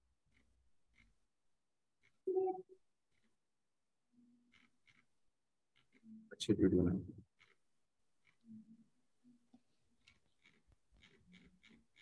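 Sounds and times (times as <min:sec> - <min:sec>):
person speaking: 0:06.3 - 0:07.2.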